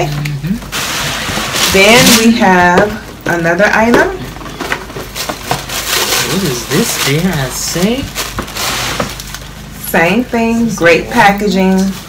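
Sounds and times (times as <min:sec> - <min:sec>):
sharp packaging crackles: 0:00.7 - 0:02.5, 0:04.4 - 0:09.7
gift packaging crinkling: 0:00.7 - 0:02.6, 0:04.2 - 0:09.8.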